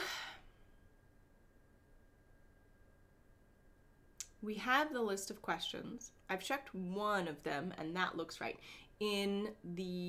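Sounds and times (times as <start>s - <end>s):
person exhaling: 0.0s - 0.6s
faint high-pitched hum: 0.0s - 10.0s.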